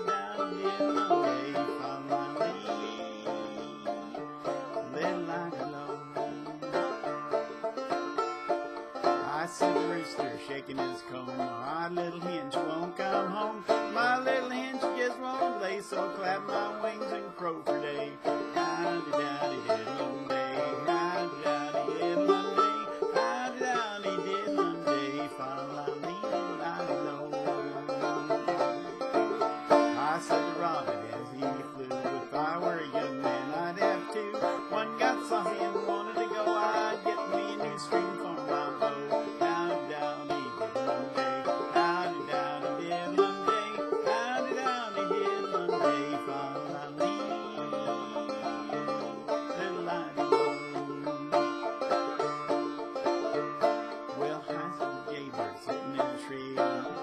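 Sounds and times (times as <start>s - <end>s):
banjo plucking: 0.0s - 57.0s.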